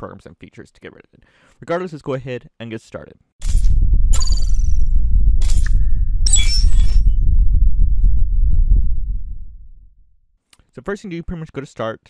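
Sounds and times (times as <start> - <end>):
deep bass rumble: 3.4 - 10.1.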